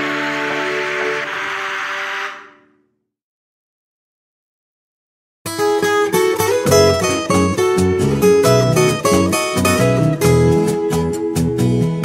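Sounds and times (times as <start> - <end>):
background music steady notes: 5.5 - 12.0.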